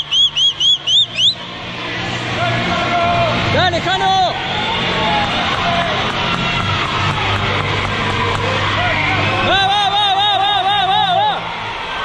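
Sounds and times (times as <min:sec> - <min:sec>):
shrill whistle blasts: 0:00.0 - 0:01.5
crowd cheering: 0:00.0 - 0:12.0.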